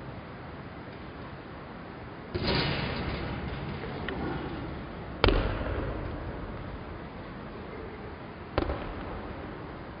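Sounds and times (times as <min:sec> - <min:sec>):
basketball bouncing in a gym: 0:05.2 - 0:06.8, 0:08.5 - 0:10.0.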